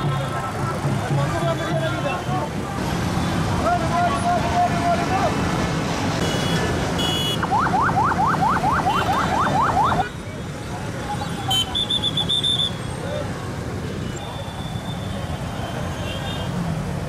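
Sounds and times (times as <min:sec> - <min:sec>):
crowd voices: 0:00.0 - 0:05.6
motorcycle engines running: 0:00.0 - 0:06.1.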